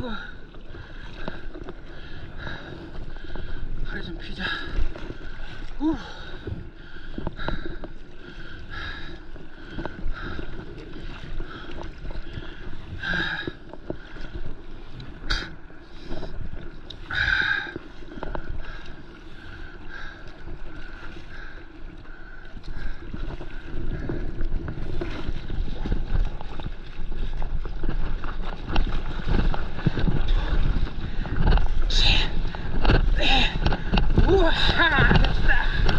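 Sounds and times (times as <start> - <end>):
paddle strokes swishing and splashing: 0.0 - 35.9
water lapping against a board: 0.0 - 35.9.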